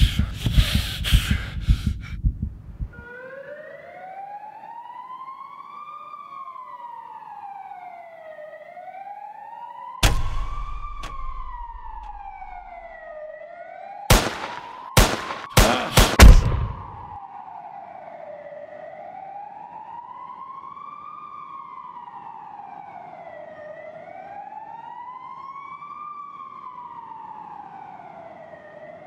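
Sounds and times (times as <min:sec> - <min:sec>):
police siren wailing: 0:02.9 - 0:29.0
heavy bang: 0:10.0 - 0:12.2, 0:16.1 - 0:17.1
sharp bangs: 0:10.0 - 0:12.8, 0:14.1 - 0:17.2.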